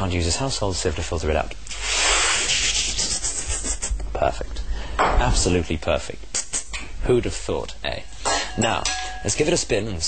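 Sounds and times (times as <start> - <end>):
beatboxed hiss: 1.6 - 4.4, 6.3 - 6.9.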